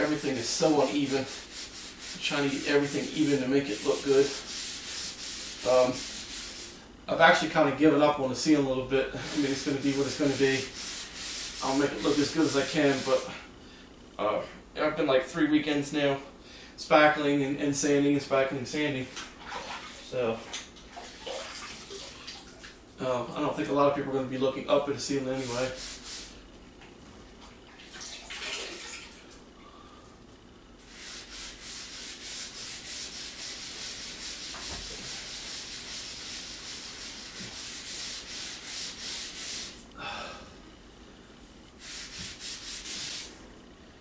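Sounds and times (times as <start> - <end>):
sponge scrubbing a ceiling: 0.0 - 6.8, 9.2 - 13.4, 25.0 - 26.4, 30.8 - 39.8, 41.8 - 43.4
water sloshing and dripping: 19.2 - 22.8, 27.6 - 29.4.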